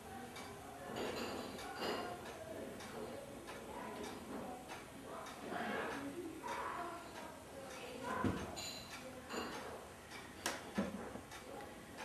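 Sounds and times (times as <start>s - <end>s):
pendulum clock ticking: 0.0s - 0.7s, 1.5s - 12.0s.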